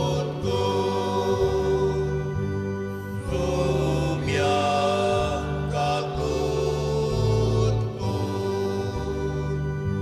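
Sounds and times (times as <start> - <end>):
hymn singing: 0.0 - 10.0
keyboard accompaniment: 0.0 - 10.0.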